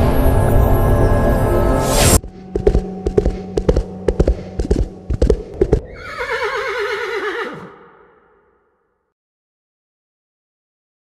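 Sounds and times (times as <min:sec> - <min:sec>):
horse hooves clopping: 0:02.2 - 0:07.0
horse whinnying: 0:05.8 - 0:08.3.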